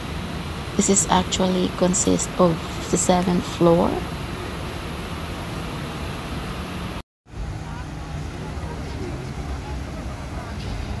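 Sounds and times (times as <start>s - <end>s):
city background noise: 0.0s - 11.0s
faint distant voices: 7.4s - 11.0s.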